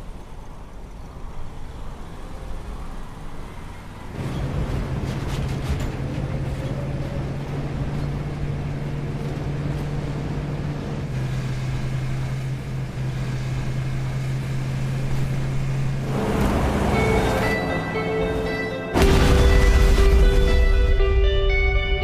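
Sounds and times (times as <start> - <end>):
road rumble: 0.0 - 22.0
vehicle engine drone: 0.0 - 22.0.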